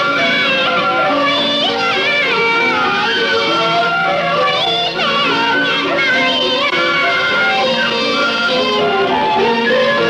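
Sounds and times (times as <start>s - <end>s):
instrumental accompaniment: 0.0s - 10.0s
person singing: 0.0s - 10.0s.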